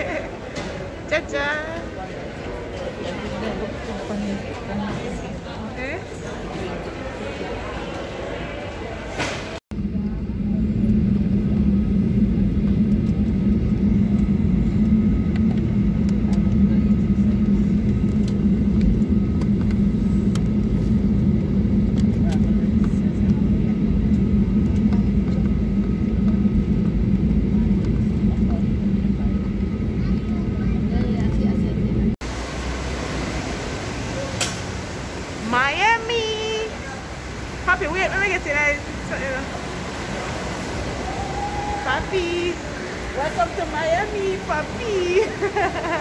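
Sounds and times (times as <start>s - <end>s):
jet engines idling drone: 0.0s - 46.0s.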